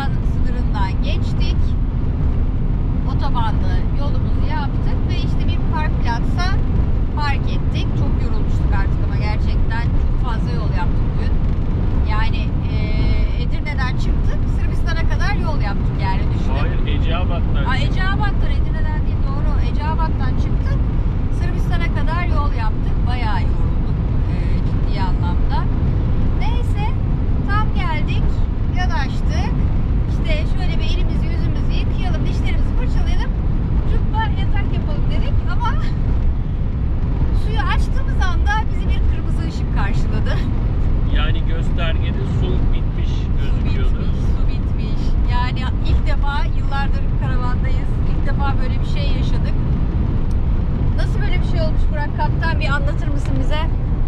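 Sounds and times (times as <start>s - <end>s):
woman talking: 0.0s - 1.8s, 3.0s - 6.6s, 7.2s - 11.4s, 12.0s - 16.7s, 17.7s - 25.7s, 26.4s - 36.0s, 37.3s - 40.5s, 43.4s - 49.6s, 51.0s - 53.8s
van engine and road drone: 0.0s - 54.0s.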